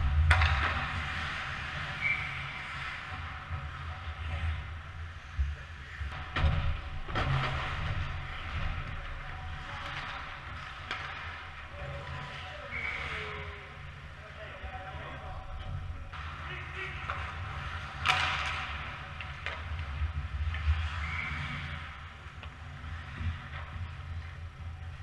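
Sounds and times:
skate blades scraping ice: 0.0s - 5.2s, 16.2s - 25.0s
sticks and puck clacking: 0.0s - 25.0s.

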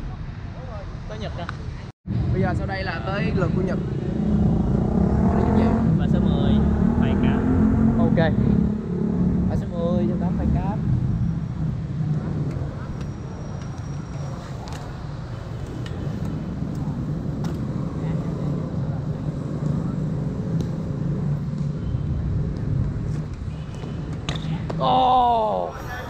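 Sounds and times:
street traffic rumble: 0.0s - 26.0s.

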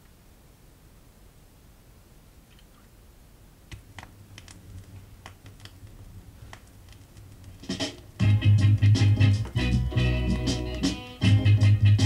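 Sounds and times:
vinyl record crackle: 3.5s - 12.0s.

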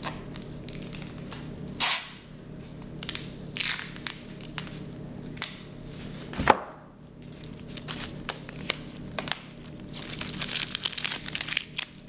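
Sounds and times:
steady low hum: 0.0s - 12.0s
rustling and crinkling: 7.2s - 12.0s.

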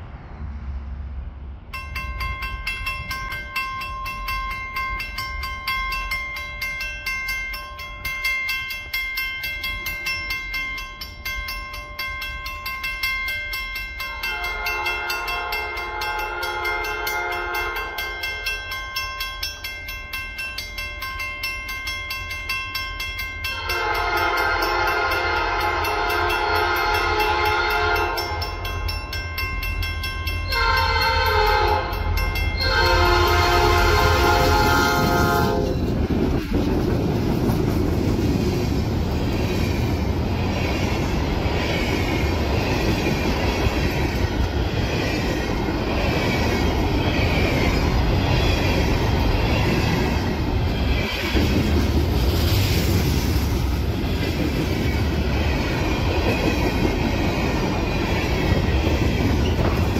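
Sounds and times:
freight cars rumbling: 0.0s - 3.6s, 31.9s - 59.9s
crossing bell ringing: 1.7s - 36.3s, 40.1s - 51.8s, 54.0s - 59.9s
locomotive air horn blasts: 14.3s - 18.0s, 23.6s - 28.3s, 30.5s - 35.8s.

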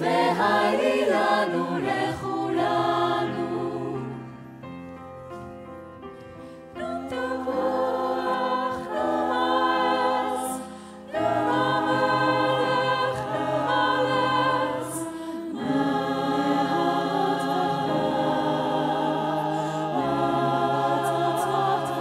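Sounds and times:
mixed choir singing in harmony: 0.0s - 5.1s, 6.7s - 22.0s.

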